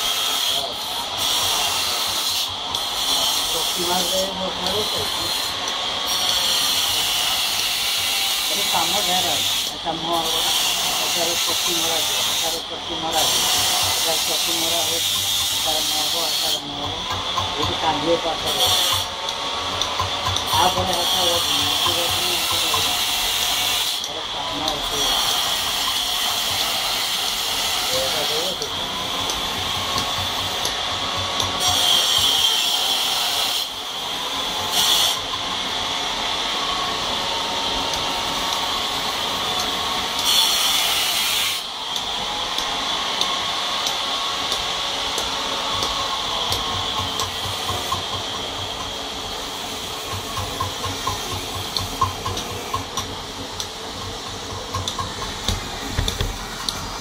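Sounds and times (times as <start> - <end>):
hand tool scraping marble: 0.0 - 35.4.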